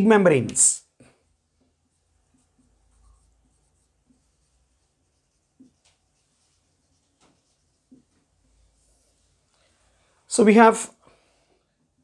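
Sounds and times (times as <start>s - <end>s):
marker pen writing on whiteboard: 1.2s - 9.8s.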